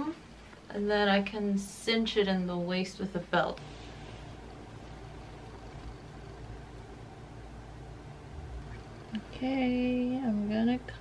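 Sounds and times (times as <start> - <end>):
faint hum: 0.0 - 11.0
low hiss: 0.0 - 11.0.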